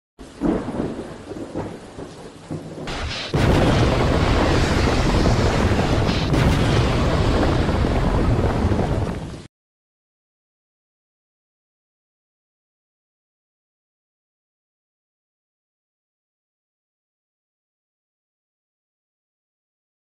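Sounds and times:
dense steady rain: 0.2 - 9.5
thunder rumbling: 0.2 - 9.5
sharp cracks: 2.8 - 9.5
loud crash: 2.9 - 9.5.

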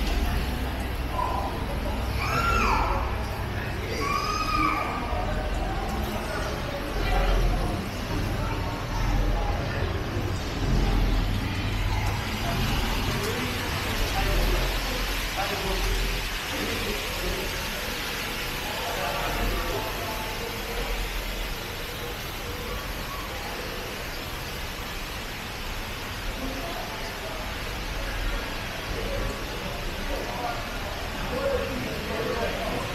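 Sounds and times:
steady hiss: 0.0 - 32.9
voices of passers-by: 0.0 - 32.9.

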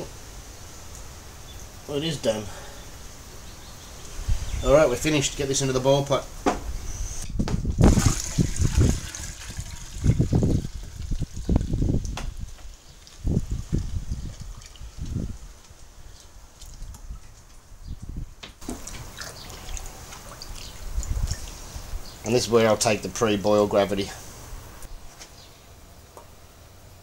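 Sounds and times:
liquid splashing: 7.8 - 12.1, 18.6 - 22.3
liquid pouring into pot: 7.9 - 11.8.

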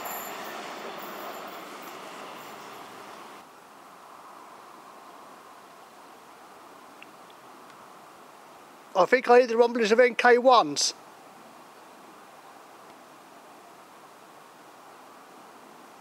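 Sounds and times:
electric train rumbling past: 0.0 - 3.5
faint background noise: 0.0 - 16.0.

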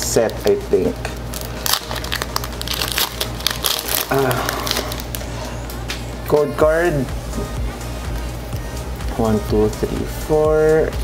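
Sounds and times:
foil wrapper crinkling: 1.2 - 5.3.

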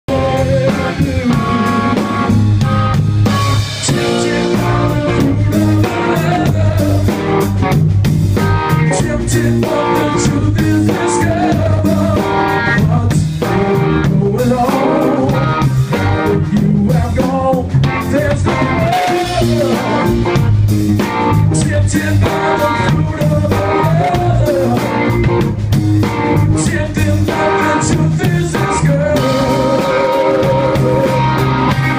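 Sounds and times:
electric guitar playing: 0.1 - 31.9
live band beat: 0.1 - 31.9.

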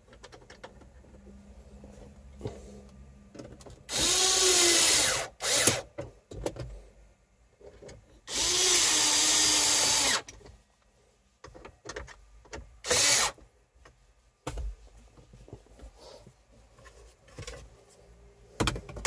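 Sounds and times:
cordless drill driving screws: 3.9 - 5.9, 8.3 - 10.3, 12.8 - 13.4.

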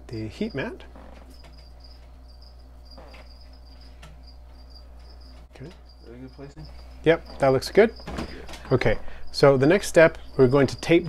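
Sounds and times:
faint low hum: 0.0 - 11.0
high-pitched pulsed chirping: 0.2 - 11.0.

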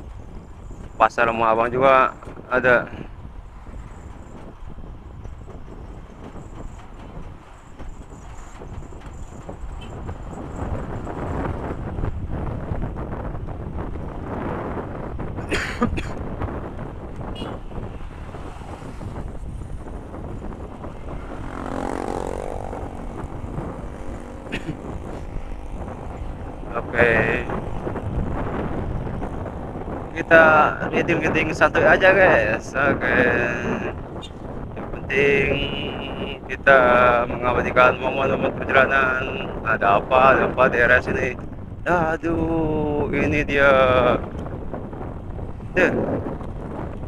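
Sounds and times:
wind and road noise: 0.0 - 47.0
motorbike engine: 16.3 - 30.8.

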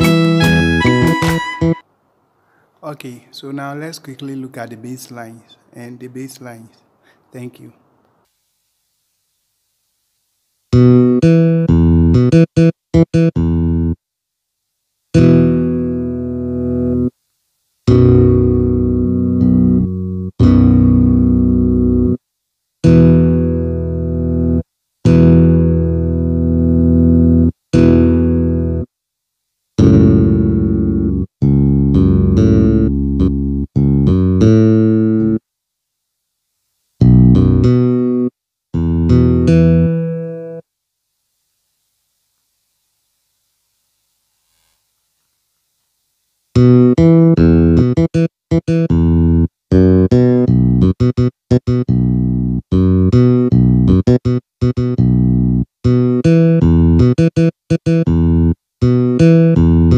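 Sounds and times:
keyboard bass line: 0.0 - 1.8, 10.8 - 14.0, 15.2 - 17.1, 17.9 - 22.2, 22.8 - 28.9, 29.8 - 35.4, 37.0 - 40.6, 46.6 - 59.9.

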